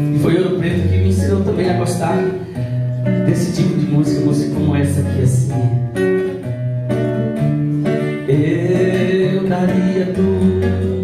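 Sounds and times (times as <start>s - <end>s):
guitar picking a melody: 0.0s - 11.0s.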